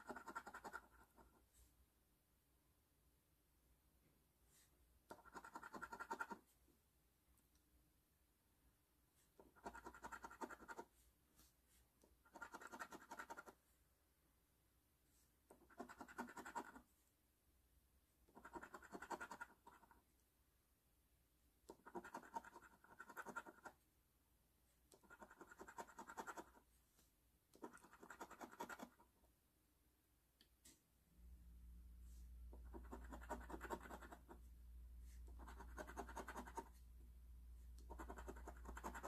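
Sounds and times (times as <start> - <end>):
coin scratching lottery ticket: 12.3 - 13.5, 32.8 - 34.3, 37.9 - 39.0.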